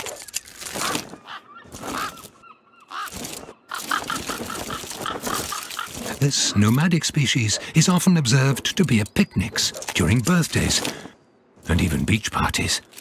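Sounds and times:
honking bird calls: 0.3 - 11.6.

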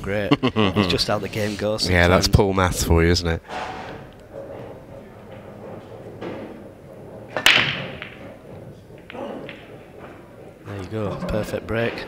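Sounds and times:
pool balls clattering: 3.4 - 12.0
cue ball cracking into rack: 3.5 - 10.6.

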